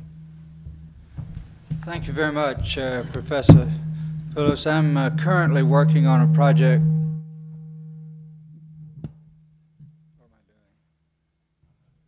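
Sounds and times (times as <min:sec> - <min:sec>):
microphone knock: 0:00.0 - 0:07.2
faint ringing tones: 0:00.0 - 0:10.6
low electrical hum: 0:00.0 - 0:12.0
person speaking: 0:01.8 - 0:07.0.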